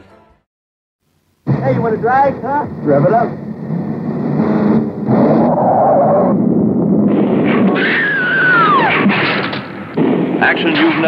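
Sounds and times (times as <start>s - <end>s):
car engines running hard: 1.4s - 10.4s
car crashing through railing: 3.7s - 11.0s
tyre screech: 7.4s - 9.6s.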